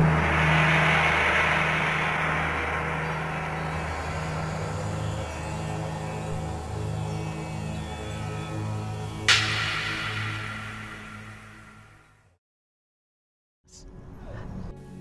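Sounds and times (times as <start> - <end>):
bright shimmering wash: 0.0 - 12.2
pulsing low tones: 0.0 - 12.2
ambient music drone: 0.0 - 12.3.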